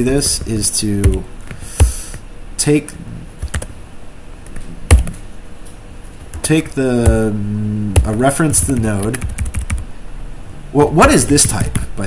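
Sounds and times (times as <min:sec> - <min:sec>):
keyboard typing: 0:00.0 - 0:02.2, 0:03.4 - 0:03.7, 0:04.4 - 0:05.2, 0:07.9 - 0:09.8, 0:11.2 - 0:11.9.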